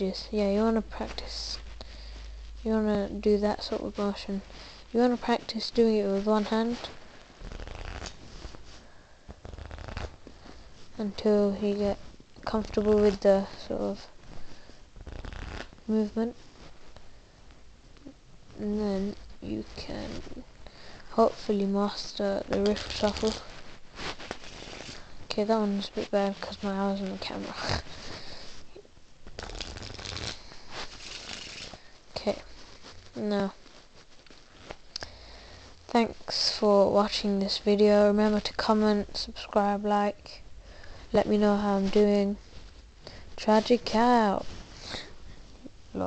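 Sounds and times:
playing cards riffle shuffled: 5.5s - 11.0s, 12.0s - 17.0s, 22.4s - 25.2s, 29.2s - 35.0s
playing cards riffling: 7.4s - 8.6s, 9.4s - 10.4s, 29.2s - 31.8s.

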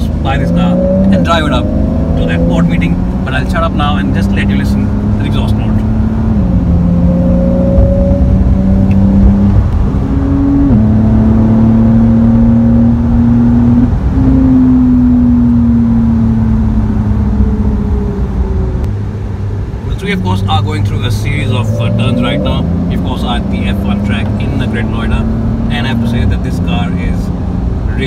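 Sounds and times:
car engine and exhaust: 0.0s - 28.0s.

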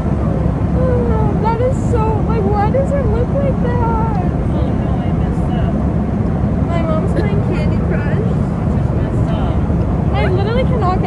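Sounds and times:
airliner cabin rumble: 0.0s - 11.0s.

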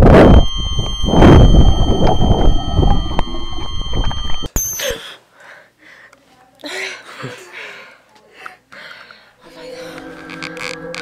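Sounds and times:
high-pitched ringing tones: 0.0s - 5.0s.

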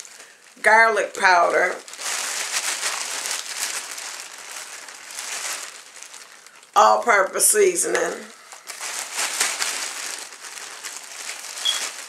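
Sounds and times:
plastic bag rustling: 0.0s - 7.4s, 8.1s - 12.0s.

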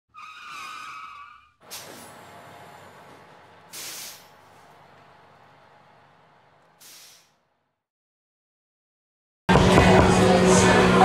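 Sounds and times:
tire squeal: 0.1s - 4.6s
air brakes hiss: 1.6s - 2.3s, 3.7s - 4.5s, 6.8s - 7.4s
rush of vehicle noise: 1.6s - 7.4s.

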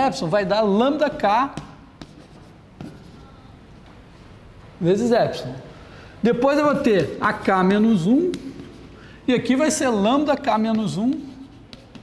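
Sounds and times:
chalk tapping: 0.0s - 3.4s, 6.4s - 12.0s
chalk writing on a blackboard: 0.9s - 3.4s, 6.8s - 12.0s.

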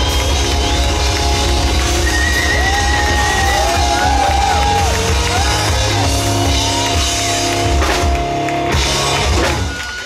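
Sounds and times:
drums: 0.0s - 10.0s
electric guitars: 0.0s - 10.0s
live pop-punk band: 0.0s - 10.0s.

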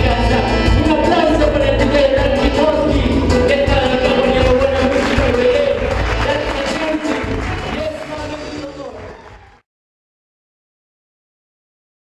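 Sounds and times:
man singing reggae: 0.0s - 7.7s
reggae backing track with heavy bass: 0.0s - 8.8s.

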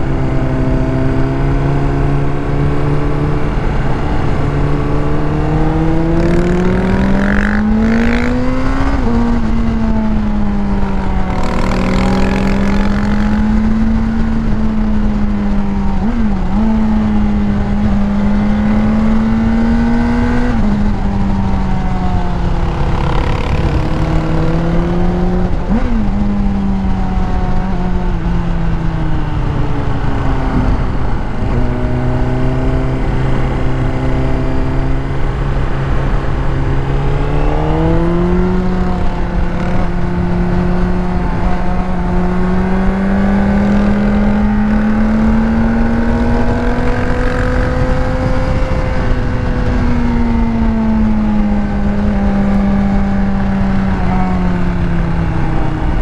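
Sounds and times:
motorcycle engine cruising: 0.0s - 56.0s.

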